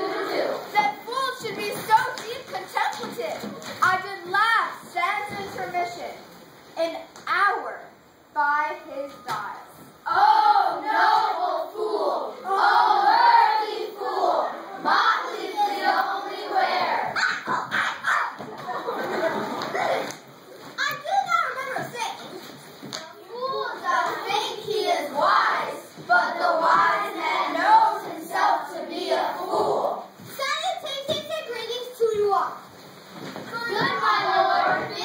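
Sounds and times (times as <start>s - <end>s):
children calling out and talking: 8.6s - 32.7s, 33.4s - 35.0s
children calling out: 10.0s - 20.2s, 33.5s - 35.0s
children yelping: 17.2s - 18.6s.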